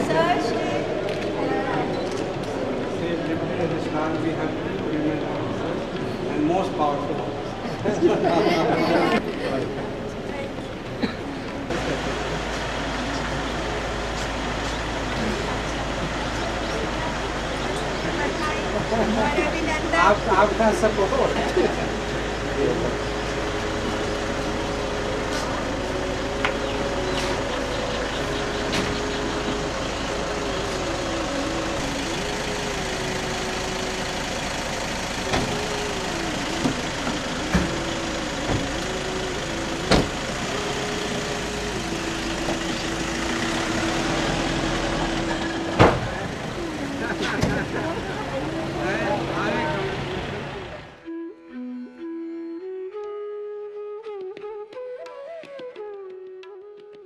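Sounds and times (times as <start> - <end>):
car engine idling: 0.0 - 51.2
murmur of voices outdoors: 0.0 - 53.9.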